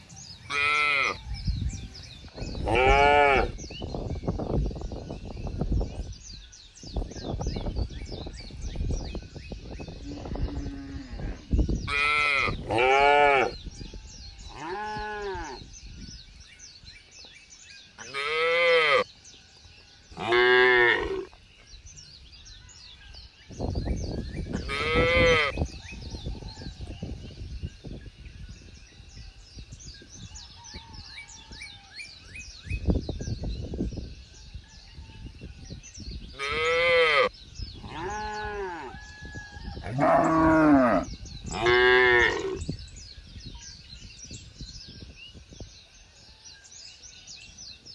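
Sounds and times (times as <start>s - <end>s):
faint bird chirping: 0.0s - 47.9s.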